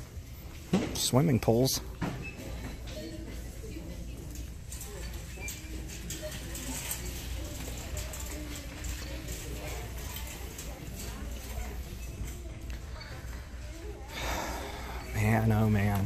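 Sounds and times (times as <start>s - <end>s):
indistinct voices: 2.4s - 16.0s.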